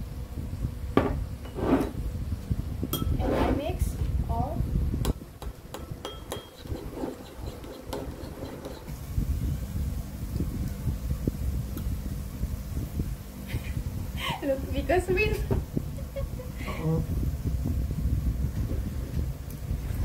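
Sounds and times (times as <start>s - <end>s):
wind rumble on microphone: 0.0s - 20.0s
spoon clinking against bowl: 5.7s - 8.9s.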